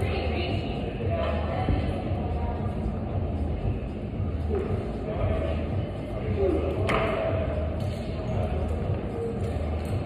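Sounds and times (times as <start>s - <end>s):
indistinct voices in a large hall: 0.0s - 10.0s
steady low hum: 0.0s - 10.0s.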